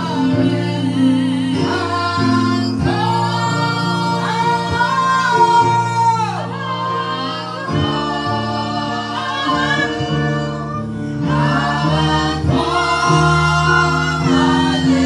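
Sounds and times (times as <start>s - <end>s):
instrumental chord accompaniment: 0.0s - 15.0s
woman singing gospel song: 0.0s - 15.0s.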